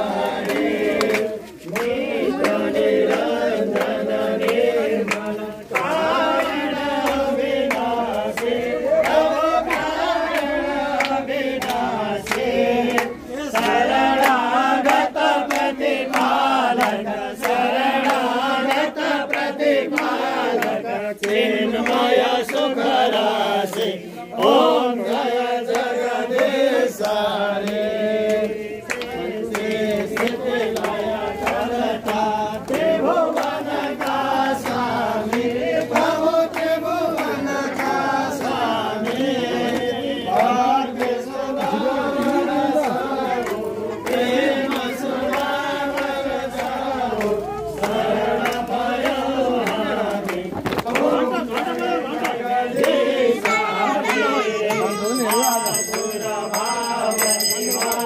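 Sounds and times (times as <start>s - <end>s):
group chanting in unison: 0.0s - 58.0s
sharp percussive clicks: 54.8s - 58.0s.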